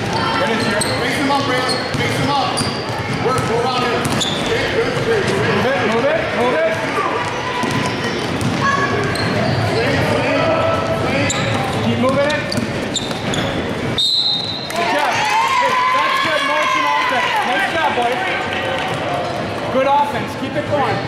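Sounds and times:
basketball dribbling: 0.0 - 5.4, 6.8 - 10.2, 10.8 - 14.0
spectators talking and calling out: 0.0 - 21.0
sneaker squeaks on court: 0.5 - 5.0, 7.2 - 9.7, 11.2 - 13.7.

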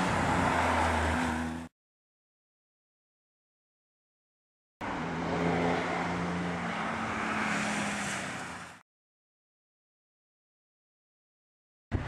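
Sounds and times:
rally car passing at speed: 0.0 - 1.7, 4.8 - 8.8.

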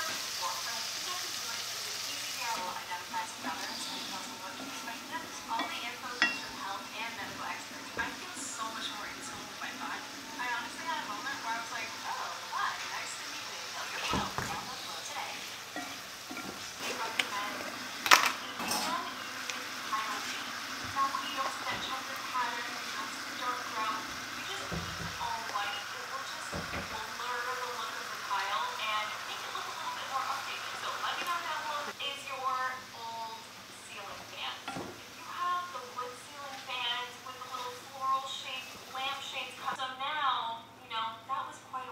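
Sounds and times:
sauce sizzling in a frying pan: 0.0 - 39.8
wooden spatula scraping a pan: 2.5 - 9.4.

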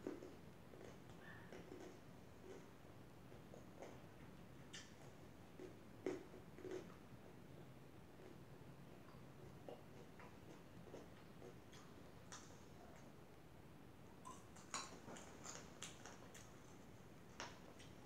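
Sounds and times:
chewing mouth clicks and smacks: 0.0 - 7.1, 8.2 - 13.1, 14.2 - 18.0.

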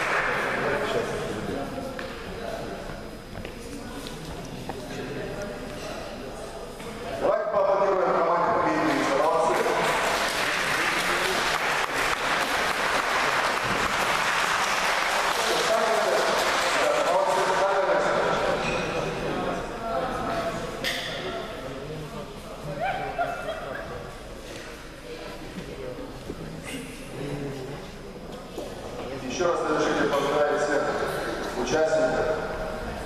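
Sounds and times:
audience applauding: 0.0 - 0.8, 9.4 - 17.6.

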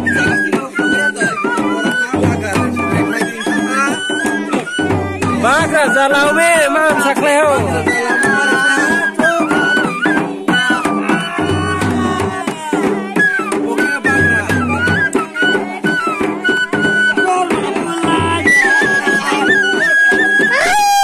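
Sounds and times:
bamboo flute melody: 0.0 - 21.0
barrel drum beating: 0.0 - 21.0.

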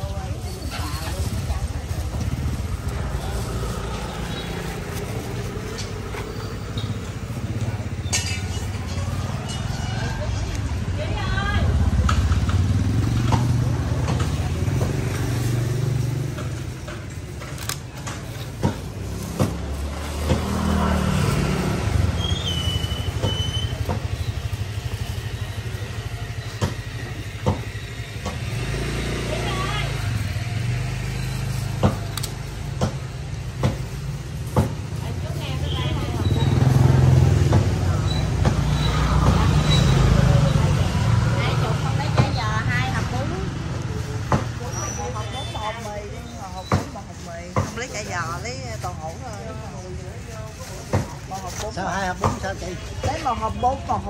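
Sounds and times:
road traffic engine rumble: 0.0 - 54.0.

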